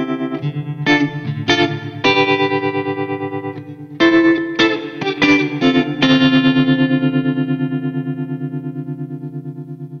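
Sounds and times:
electric guitar chord with tremolo: 0.0s - 10.0s.

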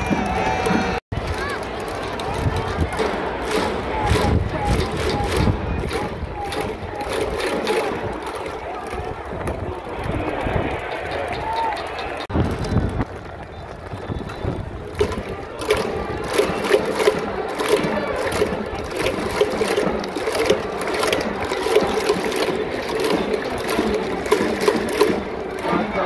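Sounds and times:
din of crowd voices: 0.0s - 26.0s
hand claps and noisemaker clacks: 0.0s - 26.0s.

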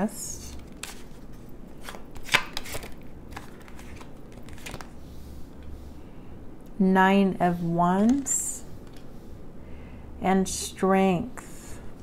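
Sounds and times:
cards being handled: 0.5s - 5.7s.

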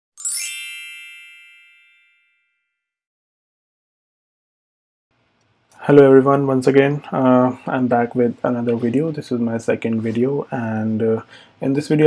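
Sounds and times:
bright chime ding: 0.2s - 2.7s.

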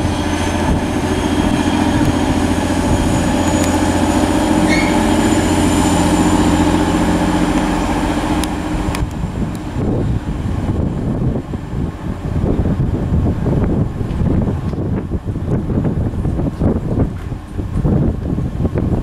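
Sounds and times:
diesel train engine drone: 0.0s - 19.0s
wheel and rail rumble: 0.0s - 19.0s.

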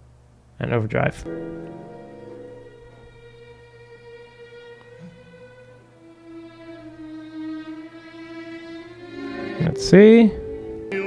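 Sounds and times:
orchestral violins: 1.2s - 11.0s.

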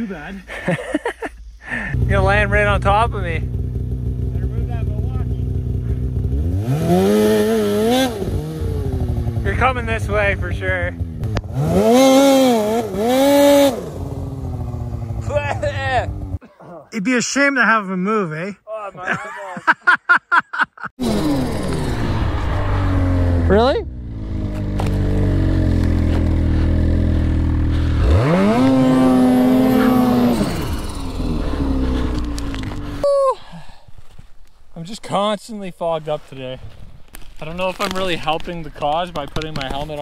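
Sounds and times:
snowmobile engine revving: 0.8s - 16.4s, 21.0s - 33.0s.

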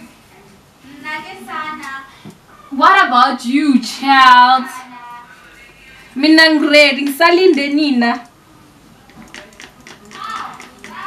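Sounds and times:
faint voices: 8.3s - 11.0s.

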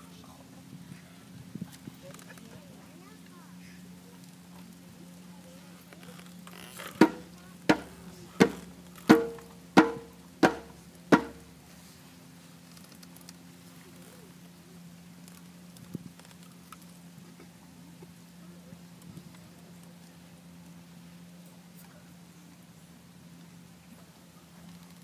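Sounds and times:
steady low hum: 0.0s - 25.0s
hand drum strikes: 7.0s - 11.4s.

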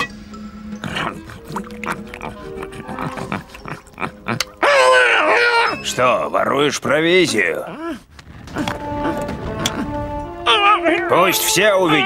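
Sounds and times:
background music: 0.0s - 6.6s, 8.4s - 12.0s
creature eating noisily: 0.8s - 4.6s.

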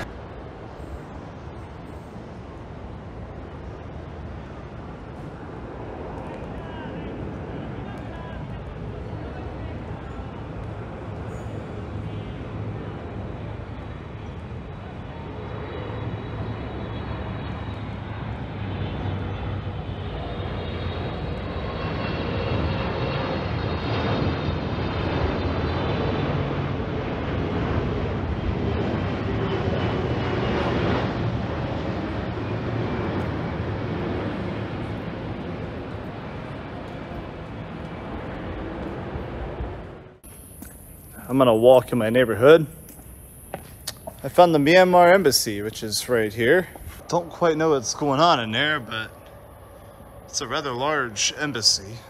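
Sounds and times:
jet airliner engine roar: 0.0s - 52.0s
high whine sliding down: 31.1s - 52.0s.

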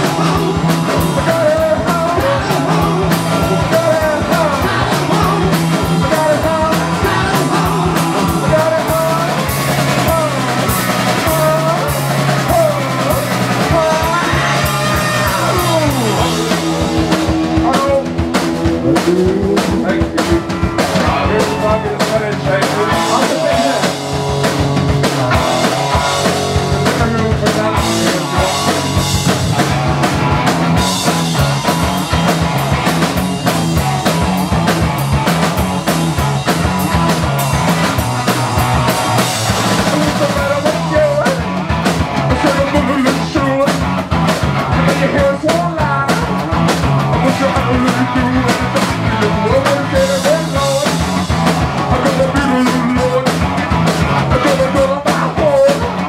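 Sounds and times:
person singing into a microphone: 0.0s - 24.0s, 26.6s - 29.0s, 39.7s - 41.5s, 42.3s - 44.0s, 44.7s - 51.1s, 51.8s - 53.4s, 54.0s - 56.0s
drum kit: 0.0s - 56.0s
electric guitar riffing: 0.0s - 56.0s.

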